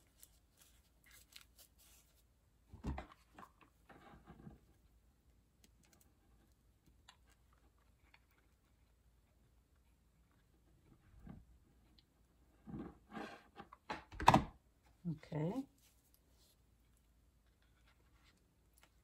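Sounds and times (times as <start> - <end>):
fabric rustling: 0.0 - 2.4.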